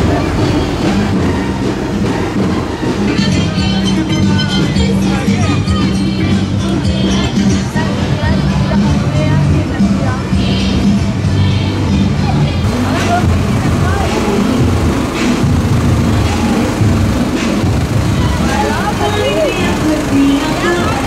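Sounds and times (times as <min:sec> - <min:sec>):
tractor engine running: 0:00.0 - 0:08.1, 0:12.6 - 0:21.0
crowd voices: 0:00.0 - 0:21.0
music from loudspeakers: 0:00.0 - 0:21.0.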